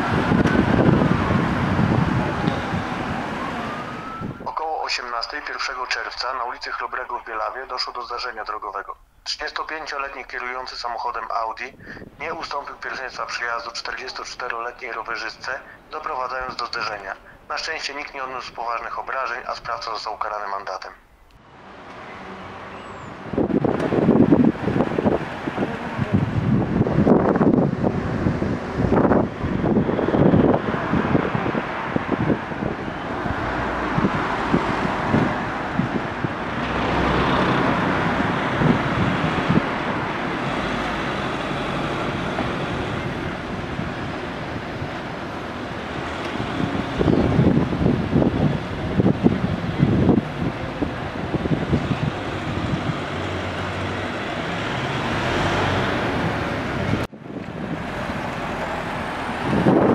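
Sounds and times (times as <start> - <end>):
vehicle passing: 0.0 - 4.4, 21.4 - 59.9
wind buffeting microphone: 0.0 - 4.6, 22.8 - 59.9.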